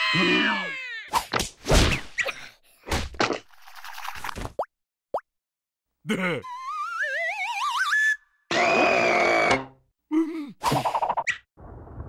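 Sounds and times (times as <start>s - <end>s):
whistle-like tone climbing in pitch: 6.5s - 8.4s.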